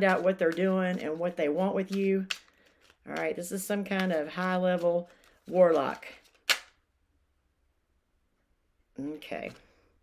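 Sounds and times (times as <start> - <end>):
card deck snap: 5.7 - 6.8.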